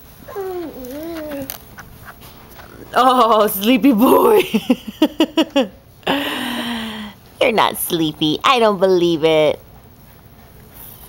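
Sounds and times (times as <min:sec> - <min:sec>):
baby whining: 0:00.2 - 0:01.6.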